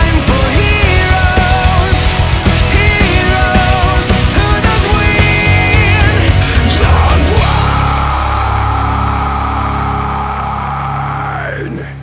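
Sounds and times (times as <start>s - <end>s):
bass: 0.0s - 12.0s
distorted electric guitars: 0.0s - 12.0s.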